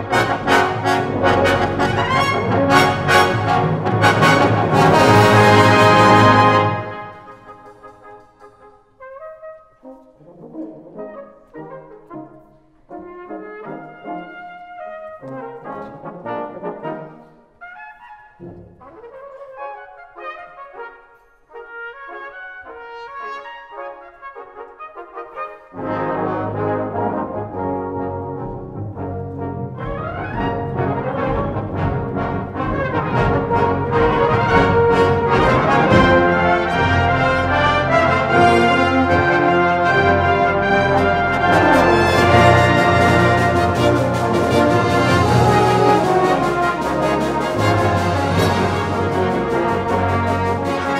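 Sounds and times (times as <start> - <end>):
brass band playing: 0.0 - 50.9.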